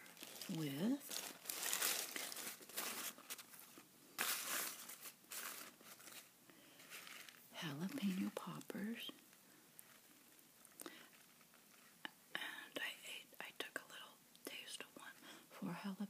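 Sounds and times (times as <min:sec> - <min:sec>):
paper wrapper crinkling: 0:00.0 - 0:12.0.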